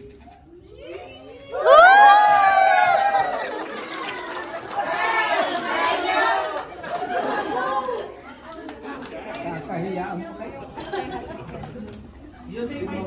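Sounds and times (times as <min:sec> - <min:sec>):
indistinct chatter in a hall: 0:00.0 - 0:13.0.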